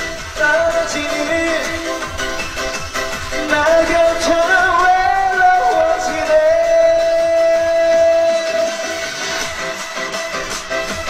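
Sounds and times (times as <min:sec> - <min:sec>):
backing music: 0:00.0 - 0:11.0
man singing a long note: 0:03.4 - 0:09.0.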